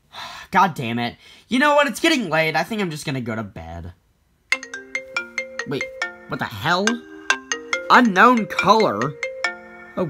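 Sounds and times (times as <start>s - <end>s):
phone ringtone melody: 4.5s - 10.0s.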